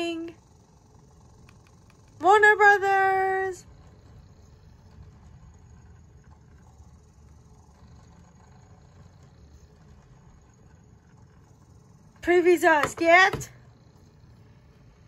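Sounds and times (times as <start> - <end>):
faint high whine: 0.0 - 15.0
low steady hum: 0.0 - 15.0.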